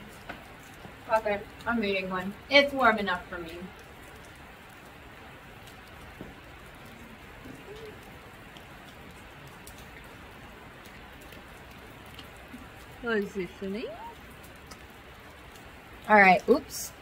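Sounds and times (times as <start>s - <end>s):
rain on a metal roof: 0.0s - 17.0s.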